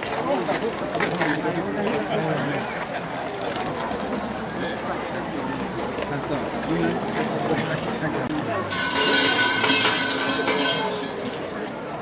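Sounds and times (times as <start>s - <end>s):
large shrine bell jangling: 8.6s - 11.2s.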